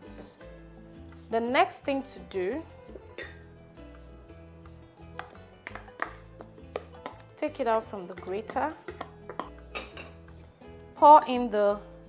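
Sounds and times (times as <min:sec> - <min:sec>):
soft background music: 0:00.0 - 0:12.0
plastic grater knocking on glass bowl: 0:05.2 - 0:07.2.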